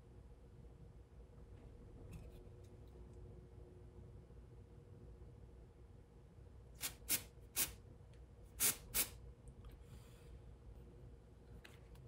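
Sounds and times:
aerosol spray hissing bursts: 6.8 - 7.8, 8.6 - 9.2.

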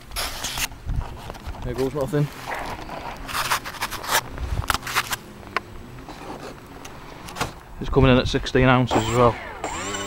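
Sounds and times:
rustling and scraping: 0.0 - 7.7.

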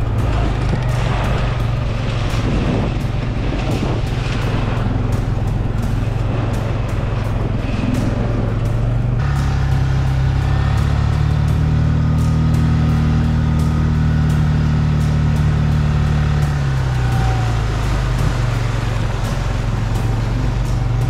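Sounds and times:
outboard motor running: 0.0 - 21.0.

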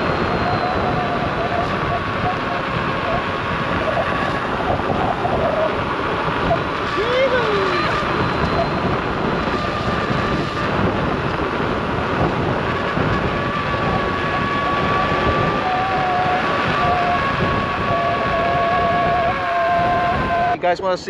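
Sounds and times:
high motor whine: 0.0 - 20.6
lower whine: 0.0 - 20.6
wind and tyre noise: 0.0 - 21.0.

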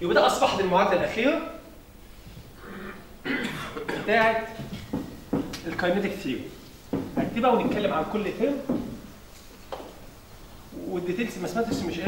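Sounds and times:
man coughing: 2.9 - 4.4.

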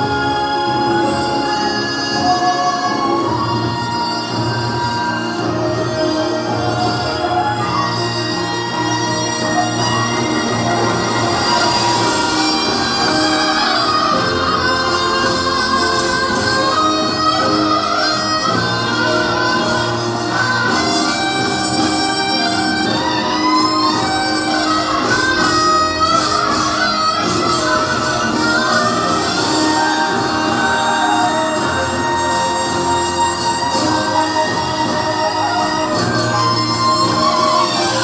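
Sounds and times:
drums: 0.0 - 38.0
folk band playing: 0.0 - 38.0
wavering high melody: 0.0 - 38.0.

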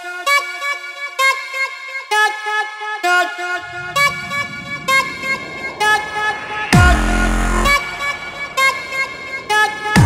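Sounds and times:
sharp hit: 3.5 - 10.0
brassy synth chords: 6.8 - 8.4.

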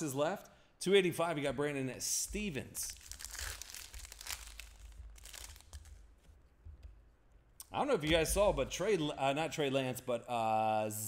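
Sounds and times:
foil wrapper crinkling: 2.8 - 6.4.

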